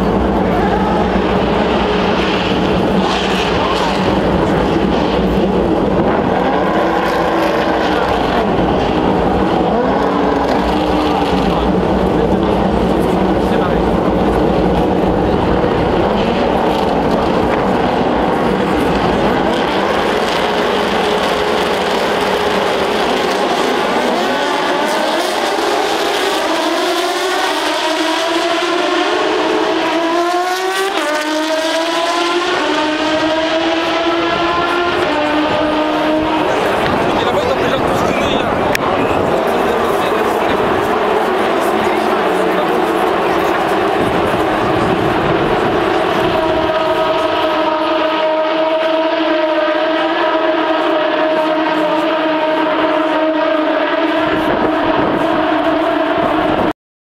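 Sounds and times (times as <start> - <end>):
race car engines droning: 0.0 - 56.7.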